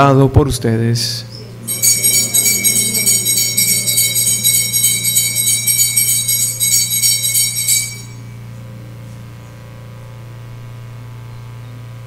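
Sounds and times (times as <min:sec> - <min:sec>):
bells jingling: 0:01.7 - 0:08.4.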